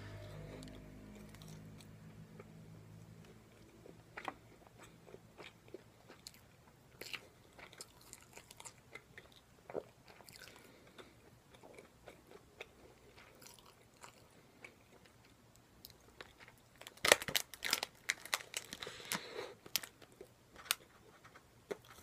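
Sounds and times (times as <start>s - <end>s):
person chewing crisp fried food: 0.4s - 2.6s, 3.2s - 22.0s.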